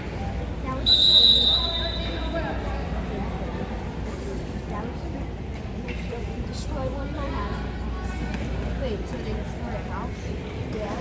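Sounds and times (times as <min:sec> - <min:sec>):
referee's whistle blowing: 0:00.8 - 0:02.3.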